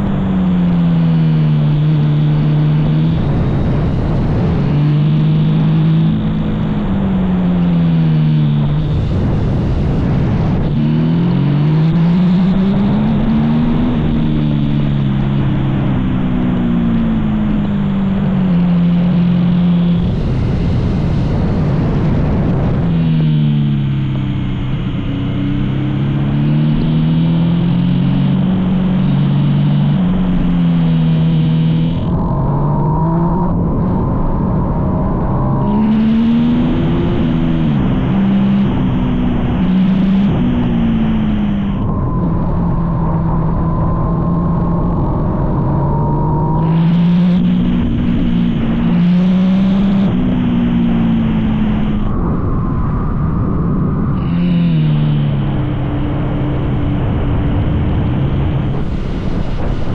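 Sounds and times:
motorcycle engine revving: 0.0 - 59.9
wind rush: 2.4 - 29.0, 29.9 - 59.9.

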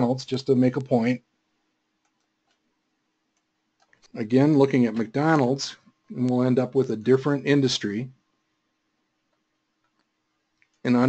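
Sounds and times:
faint computer mouse clicks: 2.0 - 2.7, 3.3 - 4.1, 9.3 - 10.8.

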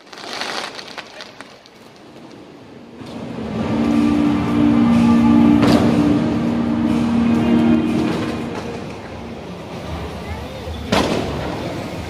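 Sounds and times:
wash of noise: 2.4 - 10.8
sustained low notes: 2.9 - 10.4
music over sound system: 3.2 - 9.4.

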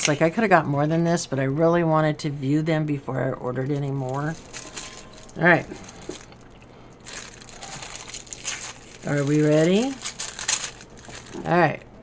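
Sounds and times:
wrapping crinkling and tearing: 3.6 - 11.8.

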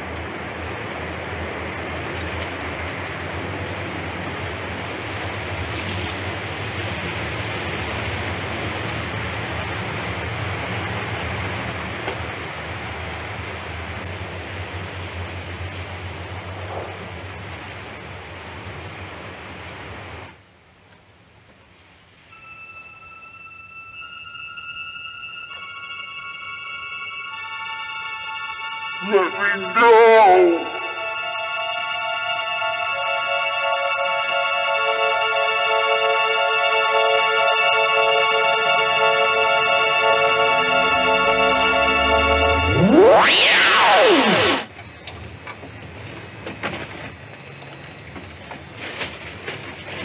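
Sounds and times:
loud rushing noise with rumble: 0.0 - 20.3, 39.0 - 44.8
sustained music tones: 22.3 - 44.8.

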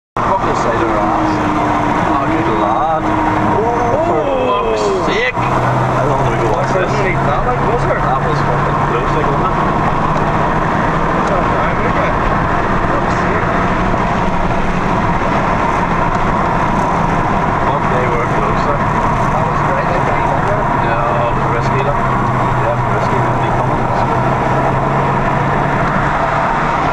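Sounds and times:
car engine drone: 0.2 - 26.9
road noise: 0.2 - 26.9.

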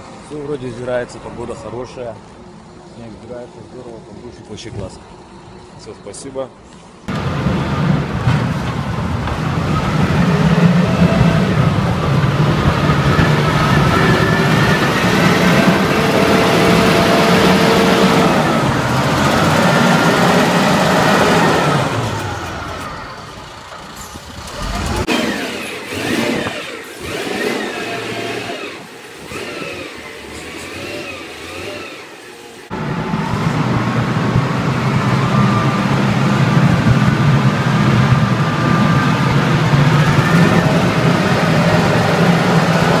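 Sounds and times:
diesel engine running under load: 7.1 - 43.0.

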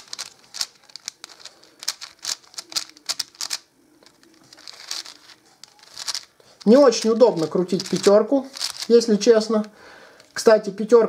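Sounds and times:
plastic puzzle cube clicking: 0.0 - 9.0.

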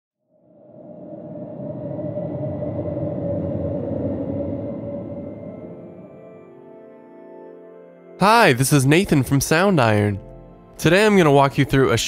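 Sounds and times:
low rumbling whoosh: 0.4 - 6.7.

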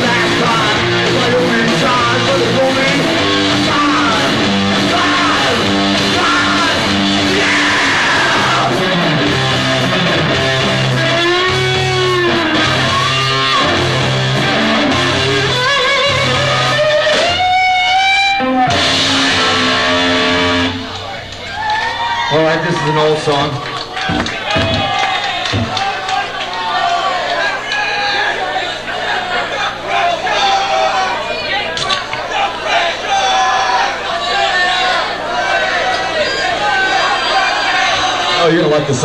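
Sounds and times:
punk band playing live: 0.0 - 21.0, 24.0 - 25.8.

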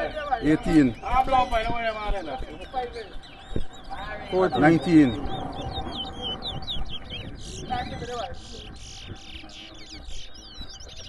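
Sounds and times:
finches singing whistled trills: 0.0 - 11.0.

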